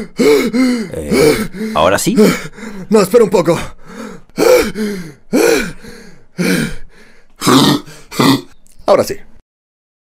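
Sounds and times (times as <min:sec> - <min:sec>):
man clearing his throat: 0:00.9 - 0:01.5, 0:07.4 - 0:08.6.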